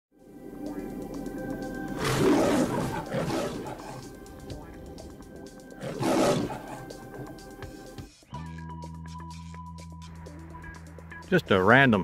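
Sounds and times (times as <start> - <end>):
beast-like roar: 2.0 - 4.2, 5.8 - 7.2.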